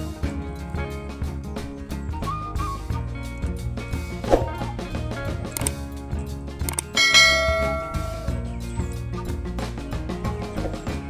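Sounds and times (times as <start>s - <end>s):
background music with steady beat: 0.0s - 11.0s
bright bell chime: 6.9s - 8.6s.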